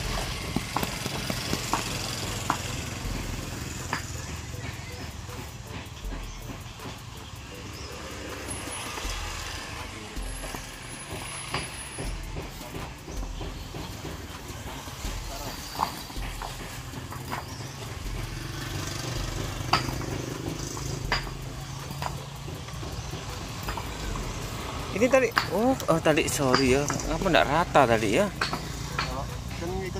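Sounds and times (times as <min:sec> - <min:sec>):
concrete blocks clicking together: 0:00.1 - 0:02.8, 0:12.6 - 0:27.2.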